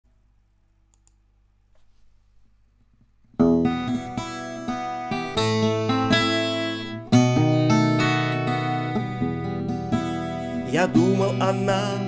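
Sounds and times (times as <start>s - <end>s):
faint clicks: 0.9s - 1.2s.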